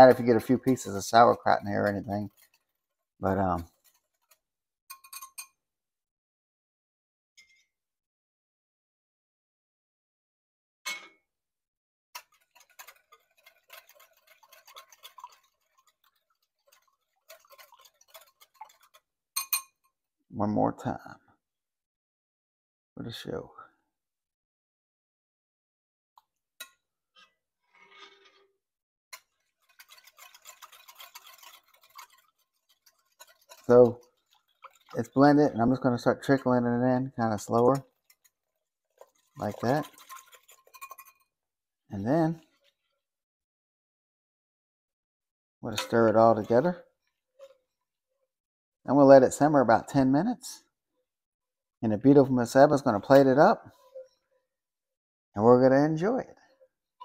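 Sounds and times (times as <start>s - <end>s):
whisk clinking against glass bowl: 0.0s - 5.6s, 12.2s - 20.0s, 29.2s - 41.3s
ladle clinking on glass bowl: 4.9s - 5.6s, 39.5s - 41.2s.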